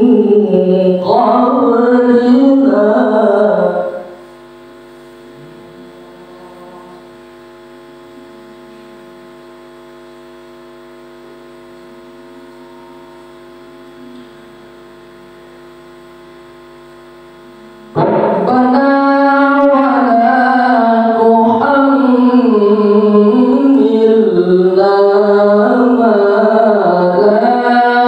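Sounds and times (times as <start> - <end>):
electrical mains hum: 0.0 - 28.0.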